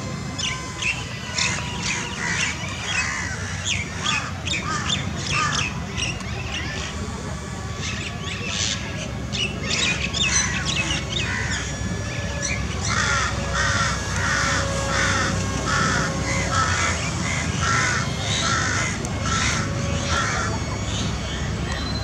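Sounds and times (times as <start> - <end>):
wild birds calling: 0.0 - 22.0
bird repeating a call: 0.2 - 22.0.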